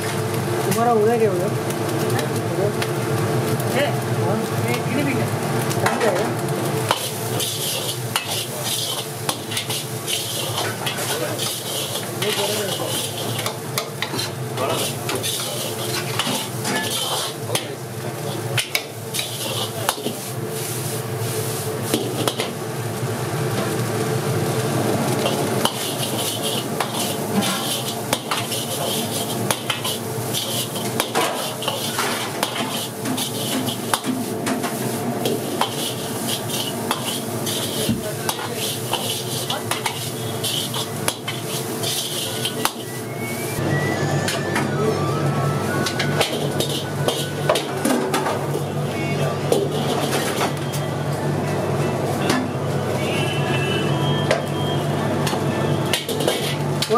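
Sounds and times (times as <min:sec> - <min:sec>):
rice sizzling: 0:00.0 - 0:44.2, 0:45.0 - 0:56.9
metal ladle scraping a wok: 0:06.9 - 0:17.7, 0:18.7 - 0:20.2, 0:25.2 - 0:43.1, 0:46.2 - 0:47.7, 0:49.6 - 0:50.6, 0:55.9 - 0:56.6.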